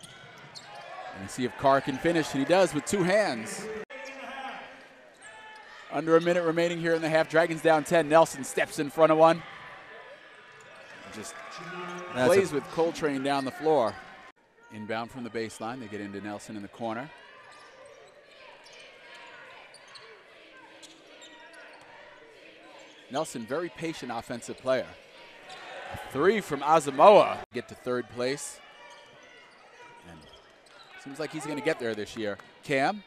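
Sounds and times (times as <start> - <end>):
crowd and players murmuring: 0.0 - 33.0
crowd murmur: 9.8 - 14.3.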